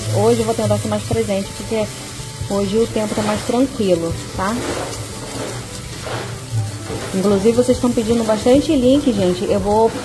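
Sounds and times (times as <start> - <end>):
quiet background music: 0.0 - 10.0
rice sizzling in oil: 0.0 - 10.0.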